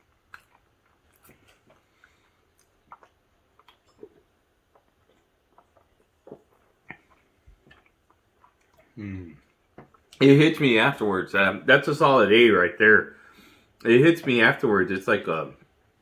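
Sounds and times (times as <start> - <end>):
person chewing food: 0.0 - 10.2
person swallowing a drink: 2.6 - 10.2.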